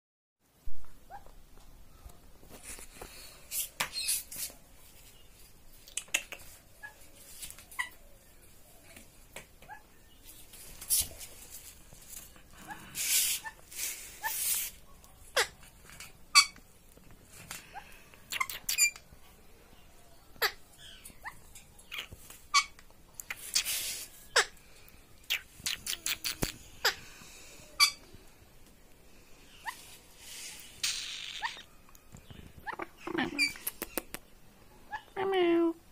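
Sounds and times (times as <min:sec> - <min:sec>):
rustling: 0:00.9 - 0:09.3, 0:10.1 - 0:18.0
parrot soft squeaks: 0:07.7 - 0:08.0, 0:16.3 - 0:16.6, 0:18.3 - 0:19.0, 0:20.4 - 0:24.5, 0:27.8 - 0:28.0, 0:30.8 - 0:31.8, 0:32.5 - 0:34.1
parakeet calling: 0:30.7 - 0:31.7.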